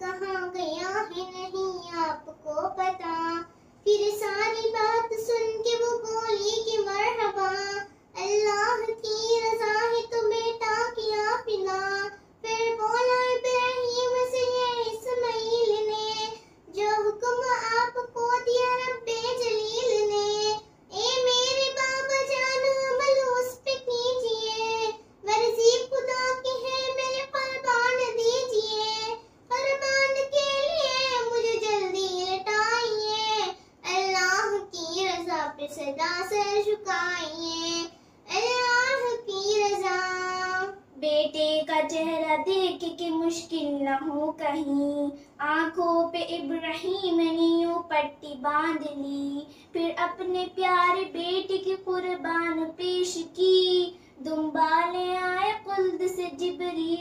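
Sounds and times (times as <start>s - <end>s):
girl singing unaccompanied: 0.0s - 57.0s.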